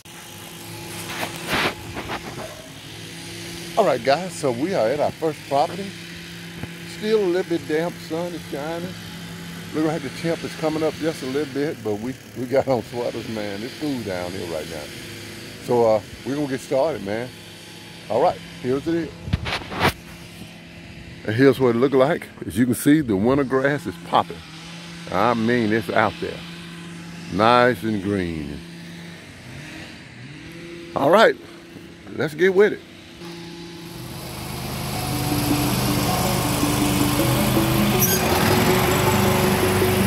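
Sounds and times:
camera handling rustles: 0.9 - 2.6
engine idling: 33.2 - 40.0.

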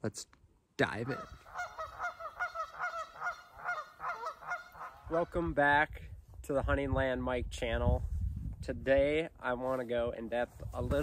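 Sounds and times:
geese honking: 1.0 - 5.3.

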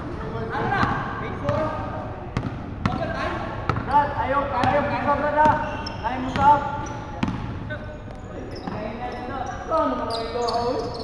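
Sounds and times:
players talking and calling out: 0.0 - 11.0.

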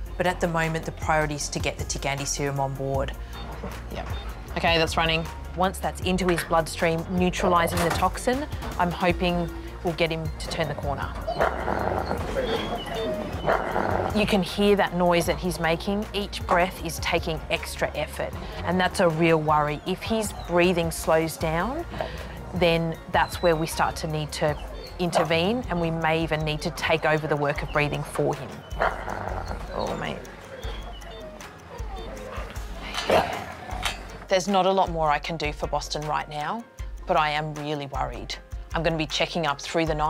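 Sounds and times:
soft background music: 0.0 - 40.0
dog breathing laboriously: 11.2 - 14.2, 18.3 - 18.7, 21.8 - 22.6, 28.5 - 34.2.

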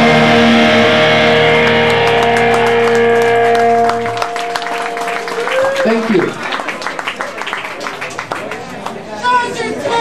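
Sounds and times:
distorted electric guitar chord ringing: 0.0 - 5.5
faint clapping: 1.6 - 9.0.

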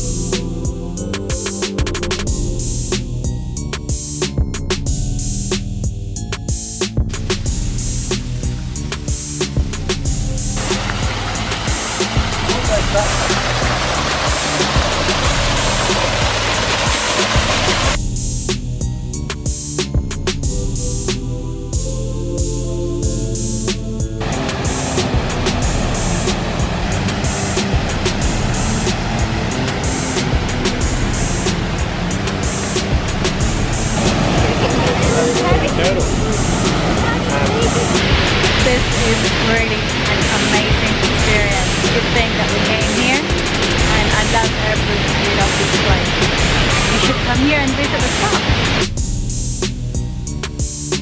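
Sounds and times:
background music with drum beat: 0.0 - 51.0
water pouring down waterfall: 9.7 - 18.0, 24.2 - 49.0.

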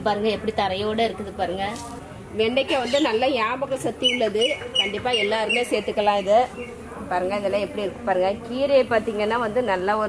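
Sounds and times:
bird chirping: 4.0 - 5.9.

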